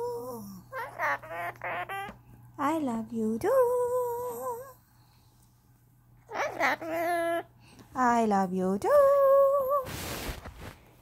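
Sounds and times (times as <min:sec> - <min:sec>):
brief rustling: 0:09.8 - 0:11.0.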